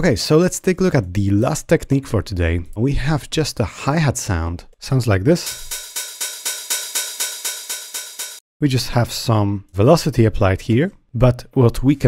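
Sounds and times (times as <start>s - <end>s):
open hi-hat hits: 5.4s - 8.4s.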